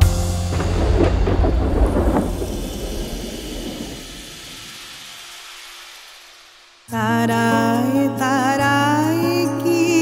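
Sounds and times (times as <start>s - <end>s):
thunder rumbling: 0.4s - 6.6s.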